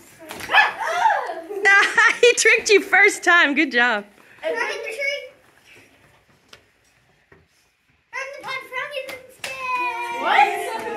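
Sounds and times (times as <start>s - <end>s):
children making drawn-out sounds: 0.2s - 1.6s, 9.4s - 10.9s
sharp clap: 8.4s - 9.8s.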